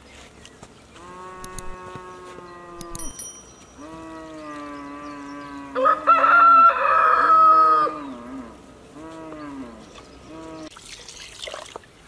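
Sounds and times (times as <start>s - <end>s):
cow mooing: 1.0s - 3.0s, 3.8s - 10.7s
rooster crowing: 5.4s - 8.1s
water pouring into clay pot: 10.7s - 11.9s.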